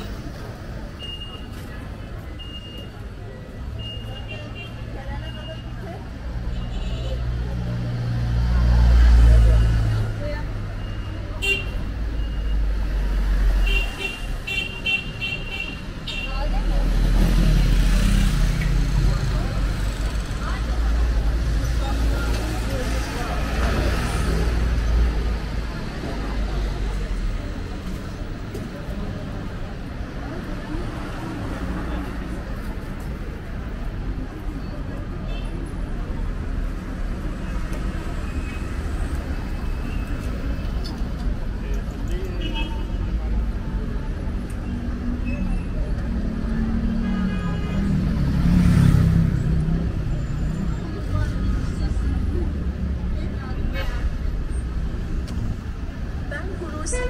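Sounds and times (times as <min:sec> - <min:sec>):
passers-by talking: 0:00.0 - 0:57.0
vehicles and scooters passing: 0:00.0 - 0:57.0.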